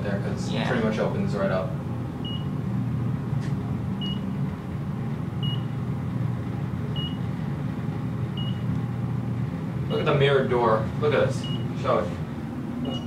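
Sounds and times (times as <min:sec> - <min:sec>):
elevator ride hum: 0:00.0 - 0:13.0.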